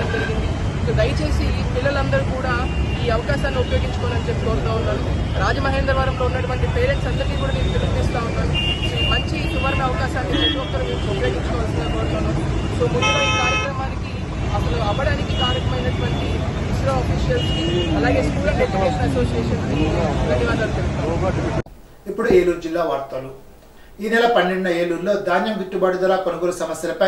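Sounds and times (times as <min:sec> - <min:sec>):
street traffic rumble: 0:00.0 - 0:22.0
vehicle horn: 0:08.4 - 0:13.9, 0:17.3 - 0:18.3
man speaking: 0:18.1 - 0:27.0.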